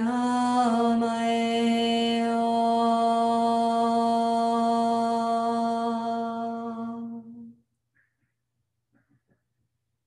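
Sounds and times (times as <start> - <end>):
person chanting om: 0.0 - 7.6.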